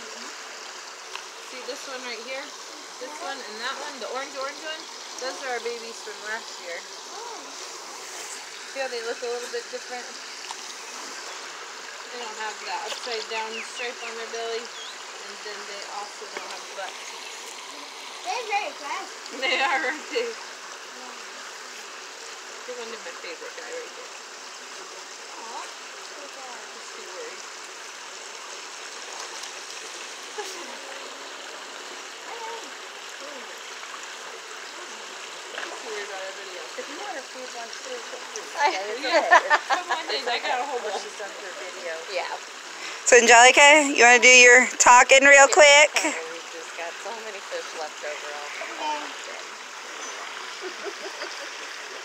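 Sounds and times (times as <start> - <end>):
running water rushing: 0.0 - 52.0.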